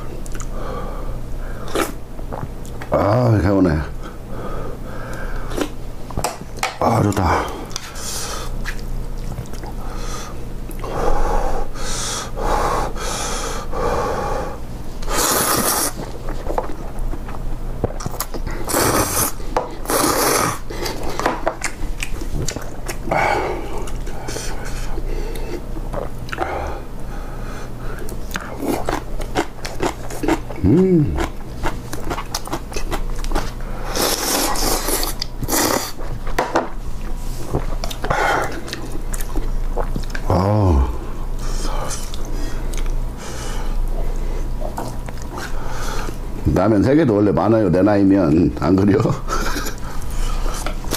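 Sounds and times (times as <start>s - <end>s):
person chewing with mouth clicks: 0.2s - 0.6s, 1.6s - 2.9s, 7.1s - 9.8s, 15.0s - 23.1s, 23.8s - 26.5s, 28.0s - 36.1s, 37.0s - 40.9s, 41.8s - 43.0s
person slurping noodles: 15.1s - 16.0s, 18.6s - 21.0s.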